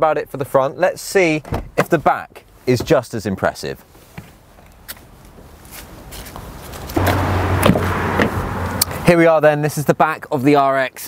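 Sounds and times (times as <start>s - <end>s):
footsteps: 4.0s - 9.0s
steady rushing noise: 6.8s - 9.1s.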